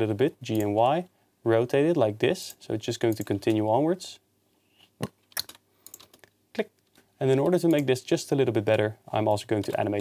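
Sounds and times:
computer keyboard keys clicking: 0:05.3 - 0:06.3.

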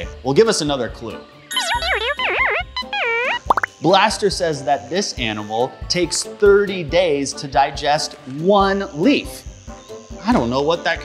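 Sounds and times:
light children's music: 0:00.0 - 0:11.0
rising bloop: 0:01.5 - 0:03.8
cartoon gibberish voice: 0:01.6 - 0:03.5.

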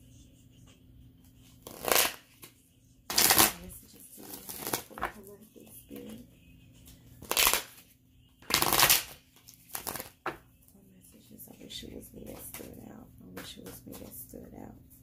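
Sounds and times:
cards being riffle-shuffled: 0:01.4 - 0:03.6, 0:04.2 - 0:05.2, 0:07.0 - 0:07.9, 0:08.5 - 0:10.4.

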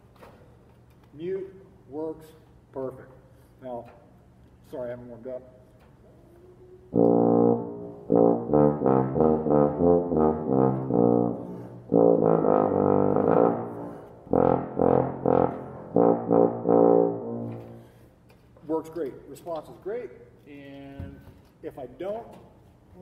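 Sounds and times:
muted tuba playing: 0:06.5 - 0:18.1.

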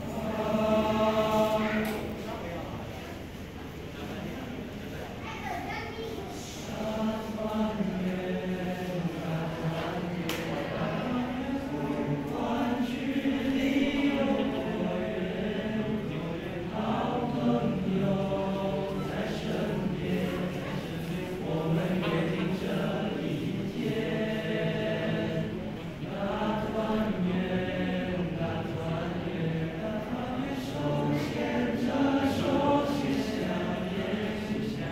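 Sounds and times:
boys' choir singing: 0:00.0 - 0:02.9, 0:06.4 - 0:34.9.

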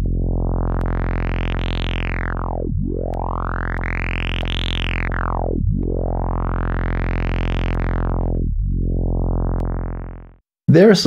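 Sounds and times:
filtered synthesizer tone sweeping: 0:00.0 - 0:10.4.

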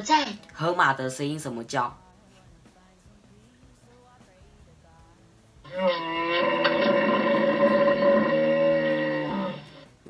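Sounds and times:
hippopotamus call from speaker: 0:05.7 - 0:09.8.

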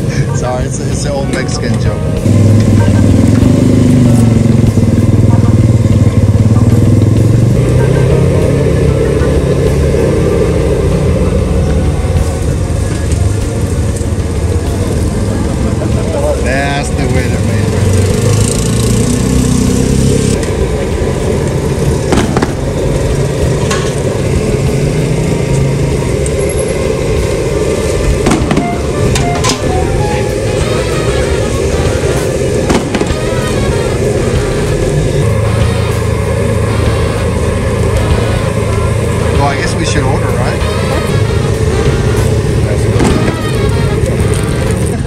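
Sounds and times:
low street rumble: 0:00.0 - 0:45.0.

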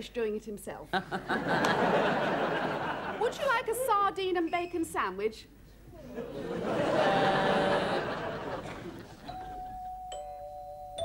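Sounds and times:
two-note doorbell chime: 0:09.3 - 0:11.0.

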